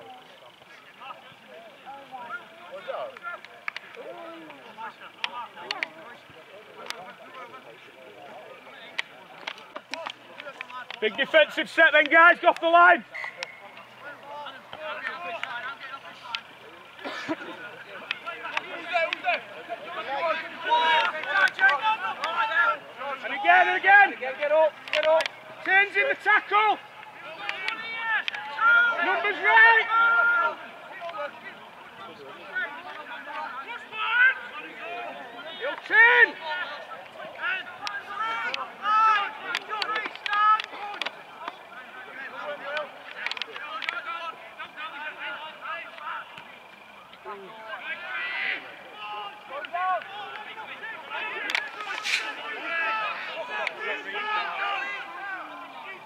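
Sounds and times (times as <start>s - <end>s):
players shouting: 0.0s - 56.0s.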